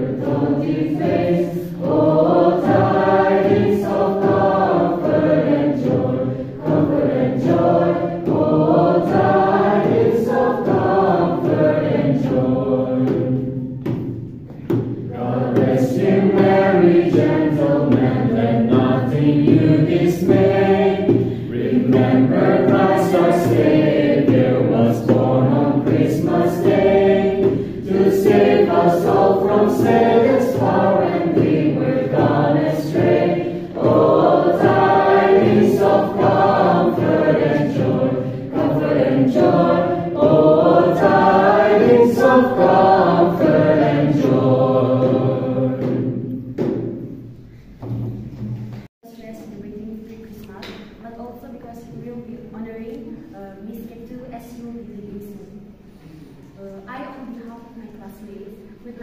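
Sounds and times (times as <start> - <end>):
children's choir singing carol: 0.0 - 48.5.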